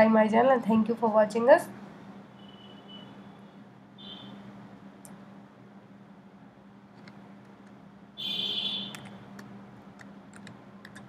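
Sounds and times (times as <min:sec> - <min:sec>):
steady low hum: 0:00.0 - 0:11.0
keyboard and mouse clicks: 0:06.9 - 0:07.8, 0:08.9 - 0:11.0.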